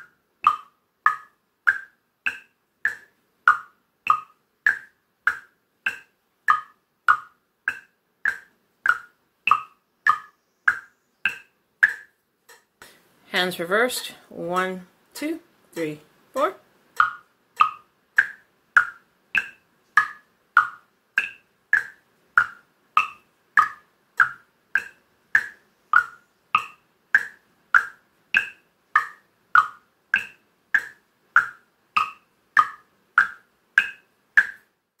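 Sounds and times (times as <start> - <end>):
wooden frog guiros tapped: 0.0 - 13.0, 15.7 - 35.0.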